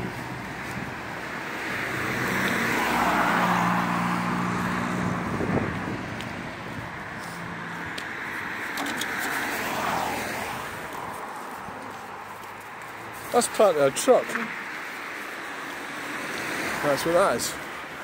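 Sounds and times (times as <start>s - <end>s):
cars passing: 0.0s - 18.0s.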